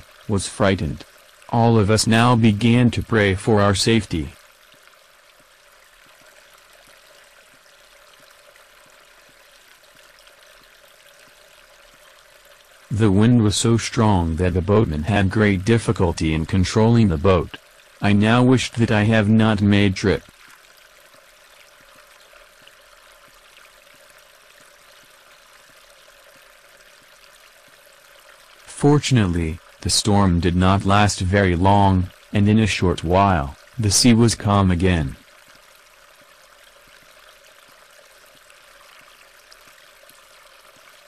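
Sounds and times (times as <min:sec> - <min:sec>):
water rushing: 0:00.0 - 0:41.0.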